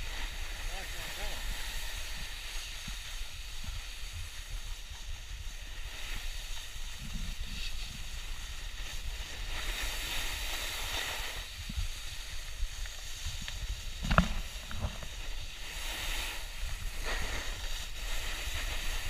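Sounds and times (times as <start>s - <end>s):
board scraping over snow: 0.0s - 19.0s
wind on microphone: 0.0s - 19.0s.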